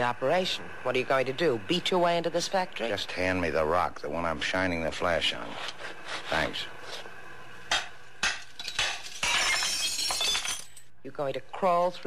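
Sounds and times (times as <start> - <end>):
glass shattering: 8.2 - 10.9.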